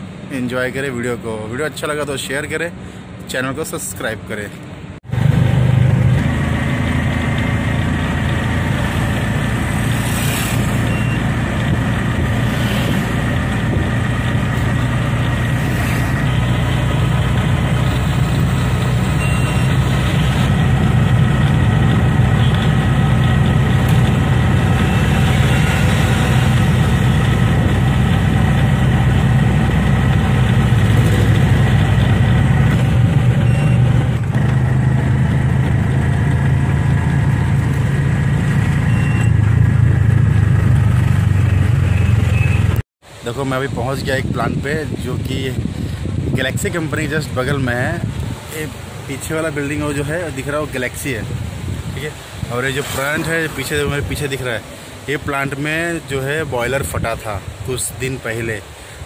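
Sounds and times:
vehicle engine running: 0:05.0 - 0:42.8.

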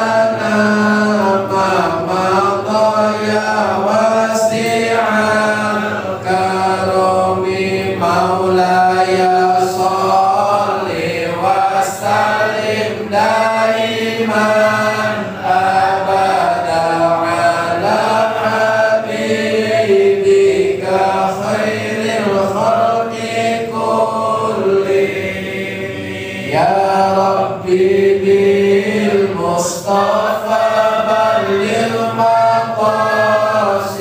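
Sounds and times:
male voices chanting in unison: 0:00.0 - 0:34.0.

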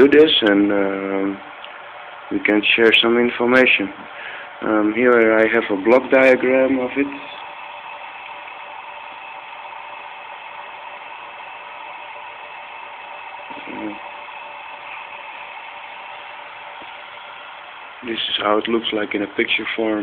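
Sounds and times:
small electric motor whining: 0:06.3 - 0:19.6.

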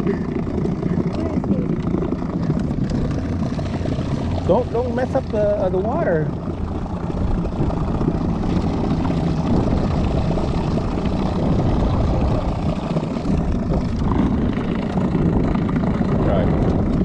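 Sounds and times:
boat motor droning: 0:00.0 - 0:17.0.

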